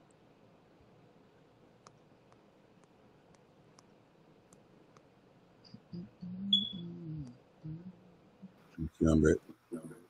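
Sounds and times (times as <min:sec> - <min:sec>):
faint mouse clicks: 0:01.8 - 0:05.1
short high beep: 0:06.5 - 0:06.8.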